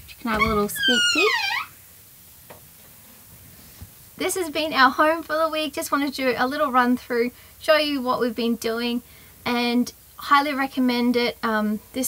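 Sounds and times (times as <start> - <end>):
woman's voice drawing out a word: 0.3 - 1.4.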